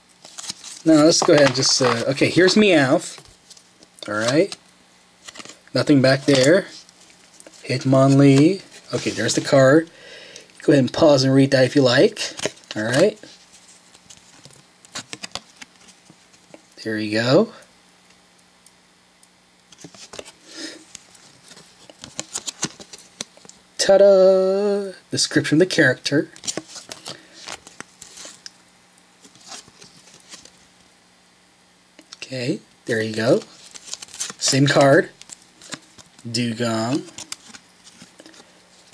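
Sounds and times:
trading cards rustling: 0.2s - 4.6s, 5.2s - 16.6s, 19.7s - 23.5s, 26.2s - 28.5s, 29.2s - 30.6s, 32.9s - 38.9s
trading cards clicking and snapping: 21.5s - 23.4s.

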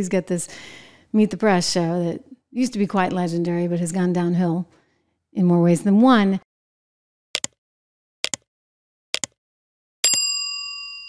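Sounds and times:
bright bell ding: 10.0s - 11.0s.

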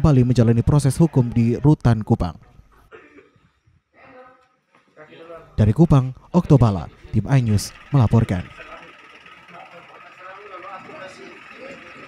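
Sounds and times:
faint voices talking: 6.5s - 12.0s.

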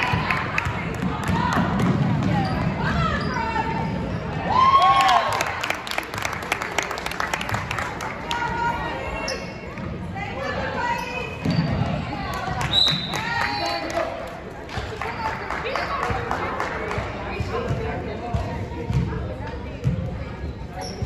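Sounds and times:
sneakers squeaking: 1.4s - 4.5s, 9.0s - 13.6s, 19.8s - 21.0s.

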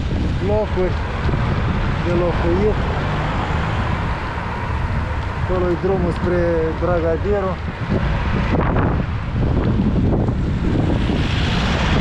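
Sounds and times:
road and traffic noise: 0.0s - 12.0s
wind buffeting microphone: 0.0s - 12.0s.

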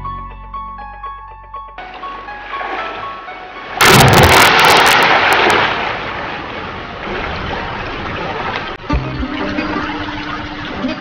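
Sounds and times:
keyboard music: 0.0s - 3.8s
rushing water: 1.8s - 11.0s
loud crackling noise burst: 3.8s - 6.6s.

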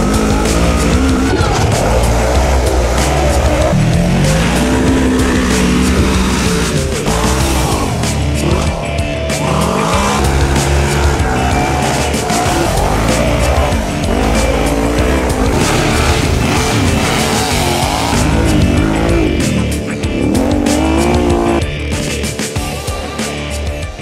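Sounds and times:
engines revving hard: 0.0s - 22.4s
background music: 0.0s - 24.0s.

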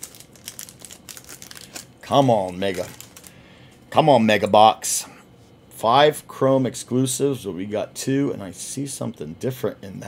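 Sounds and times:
foil wrapper crinkling: 0.0s - 3.4s.

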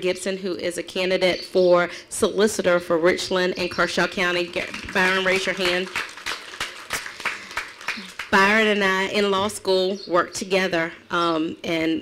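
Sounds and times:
audience applause: 4.5s - 8.4s.

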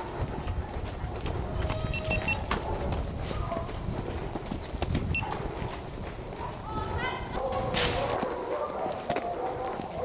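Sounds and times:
wind rumbling on microphone: 0.0s - 8.2s.

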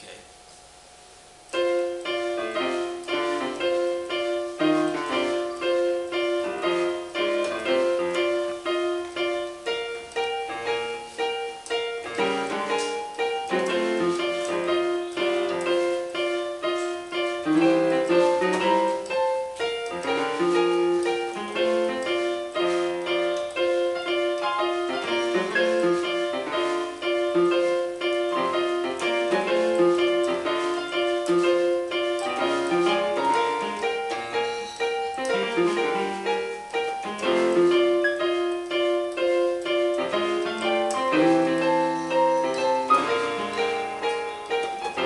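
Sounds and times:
blues piano on electronic keyboard: 0.0s - 45.0s.

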